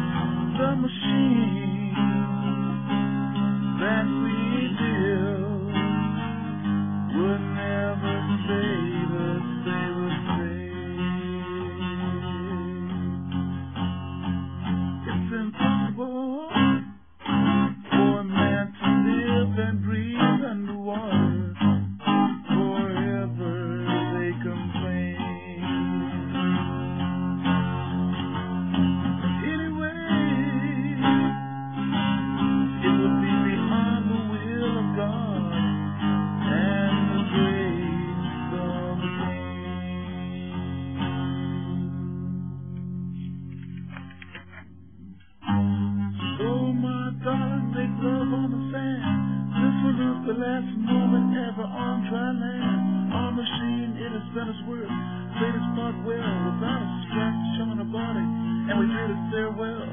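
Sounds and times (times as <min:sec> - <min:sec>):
solo guitar strummed and picked: 0:00.0 - 0:59.9.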